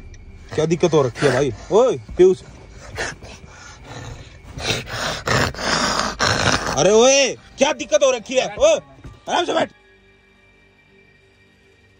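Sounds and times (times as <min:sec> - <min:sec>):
person growling harshly: 0:00.5 - 0:01.8, 0:02.7 - 0:07.3.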